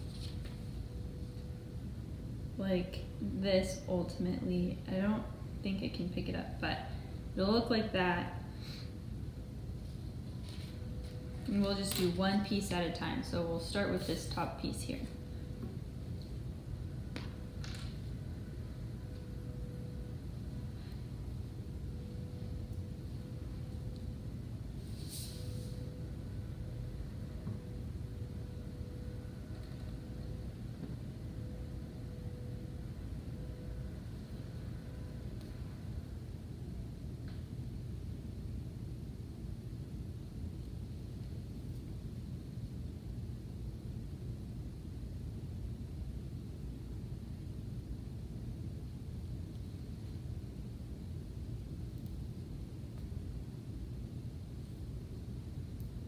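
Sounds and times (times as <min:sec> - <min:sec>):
faint steady hum: 0:00.0 - 0:56.0
low room noise rumble: 0:00.0 - 0:56.0
short high hiss: 0:24.9 - 0:25.8.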